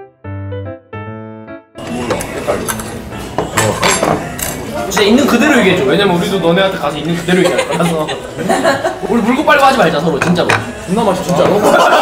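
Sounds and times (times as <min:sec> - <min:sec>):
cutlery and dishes clattering: 0:01.8 - 0:05.4.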